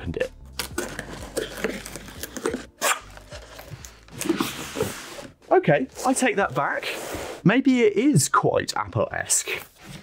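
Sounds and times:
cardboard scraping and rustling: 1.0s - 7.4s.

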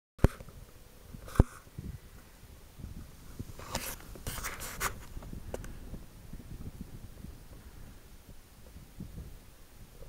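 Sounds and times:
microphone handling rubs: 0.2s - 2.0s, 2.8s - 7.8s
low uneven rumble: 0.4s - 10.0s.

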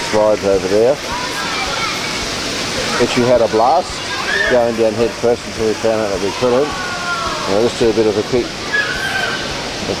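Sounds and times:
faint voices calling: 0.0s - 10.0s
water cascading from fountains: 0.0s - 10.0s.

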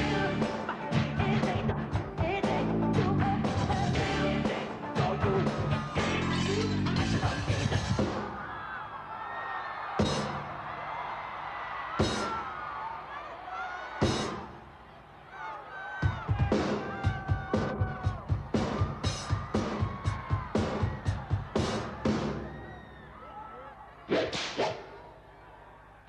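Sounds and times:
crowd screaming and whooping: 4.8s - 26.0s.

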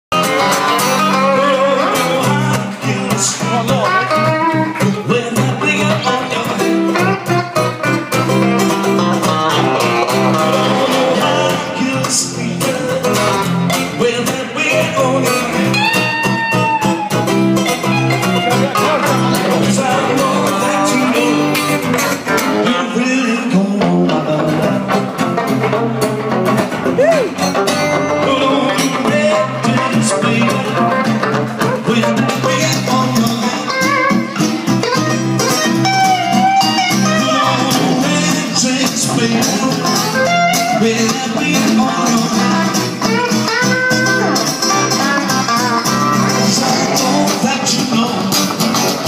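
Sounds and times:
acoustic guitar strumming: 0.1s - 49.0s
electric guitar playing: 0.1s - 49.0s.

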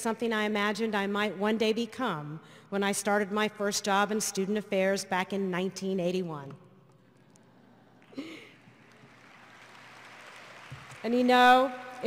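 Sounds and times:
audience applause: 8.7s - 11.5s.

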